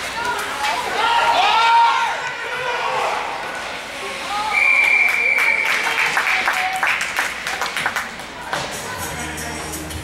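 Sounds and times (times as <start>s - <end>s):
spectators clapping: 4.8s - 8.8s.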